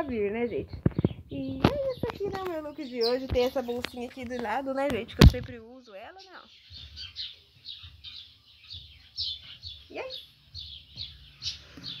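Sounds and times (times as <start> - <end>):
soft low thumps: 0.0 - 5.6
small birds chirping: 0.0 - 12.0.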